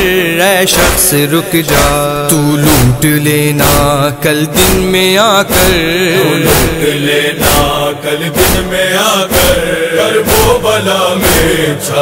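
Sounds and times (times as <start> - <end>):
young man chanting lament: 0.0 - 11.9
chest-beating thumps: 0.7 - 11.6.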